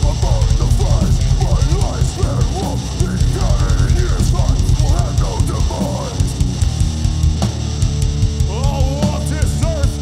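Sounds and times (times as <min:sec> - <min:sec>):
vocalist singing: 0:00.0 - 0:06.5, 0:08.4 - 0:10.0
distorted guitars and bass: 0:00.0 - 0:10.0
pounding drum kit: 0:00.0 - 0:10.0.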